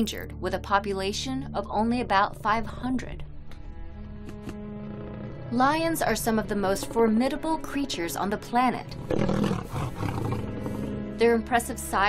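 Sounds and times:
background music: 0:00.0 - 0:12.0
lion roaring: 0:04.8 - 0:05.6, 0:09.0 - 0:11.0.

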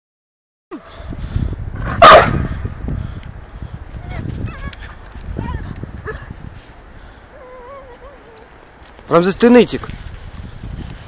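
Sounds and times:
dog barking: 0:02.0 - 0:02.4
rustling in dry grass: 0:02.8 - 0:11.0
dog whining: 0:07.4 - 0:08.5.

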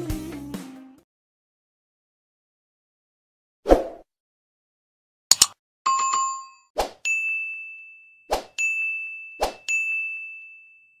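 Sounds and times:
bell-like ding: 0:05.9 - 0:11.0.

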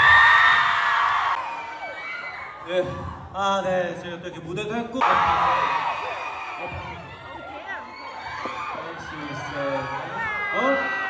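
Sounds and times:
audience screaming and cheering: 0:00.0 - 0:03.4, 0:05.0 - 0:11.0.

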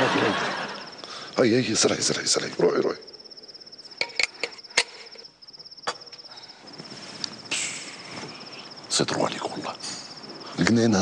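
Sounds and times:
cricket chirping: 0:00.0 - 0:11.0
brief hiss: 0:07.1 - 0:08.4.

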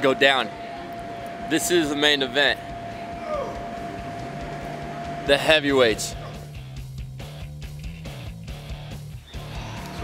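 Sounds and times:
low drone: 0:00.0 - 0:06.9
thin electrical hum: 0:00.0 - 0:07.8.

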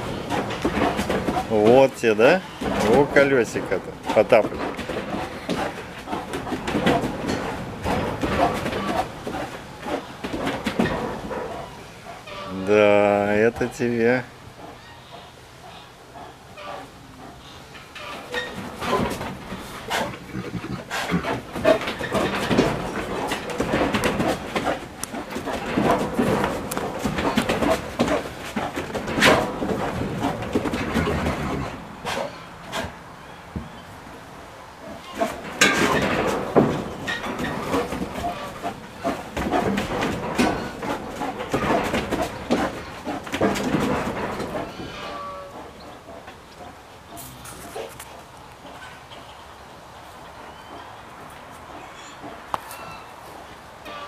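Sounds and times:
rubber tire thumping on wooden boards: 0:18.6 - 0:33.8, 0:34.9 - 0:45.0.

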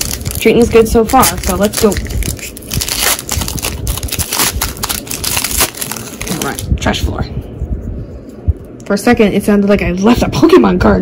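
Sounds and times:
foil wrapper crinkling: 0:00.0 - 0:06.7.

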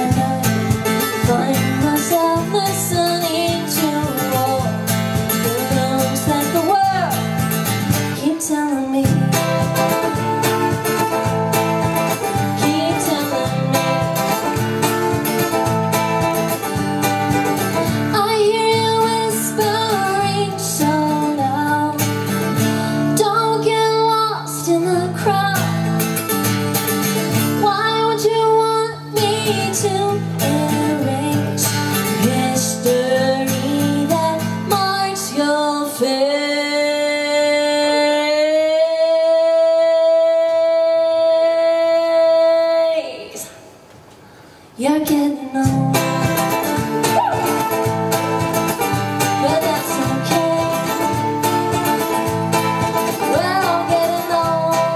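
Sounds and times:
ukulele strumming: 0:00.0 - 0:22.6, 0:45.1 - 0:54.9
strummed acoustic guitar: 0:00.0 - 0:38.4, 0:45.0 - 0:54.9
woman singing: 0:00.0 - 0:43.6, 0:44.8 - 0:54.9.

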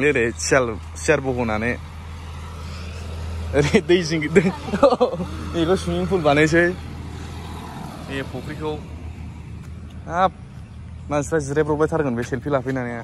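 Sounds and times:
person speaking: 0:03.5 - 0:06.9.

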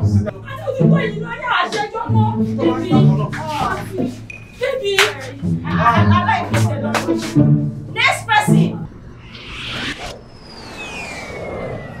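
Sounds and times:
low rumble: 0:08.8 - 0:12.0
whistling tone gliding down: 0:09.0 - 0:12.0.

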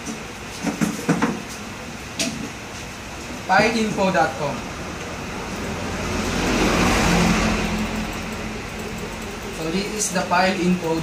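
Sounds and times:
road vehicle passing: 0:04.3 - 0:10.2.

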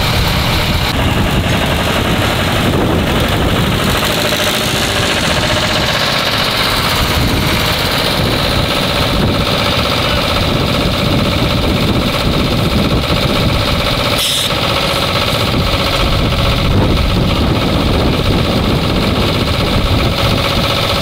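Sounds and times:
fire engine running: 0:00.0 - 0:21.0.

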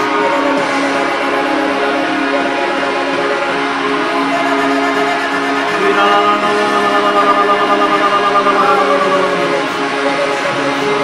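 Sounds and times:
slow worship song: 0:00.0 - 0:11.0
woman singing: 0:00.0 - 0:11.0.

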